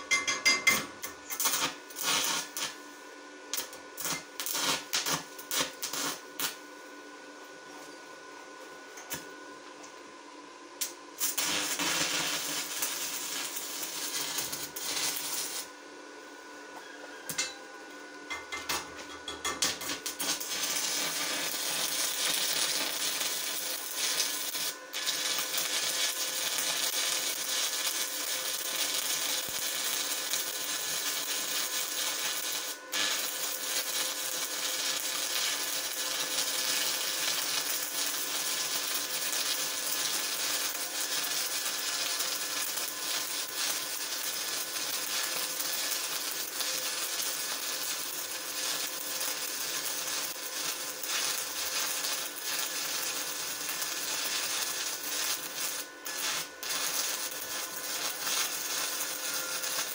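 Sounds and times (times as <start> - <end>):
welding arc crackling and hissing: 1.1 - 2.9, 3.5 - 6.6, 10.8 - 15.8, 18.6 - 59.9.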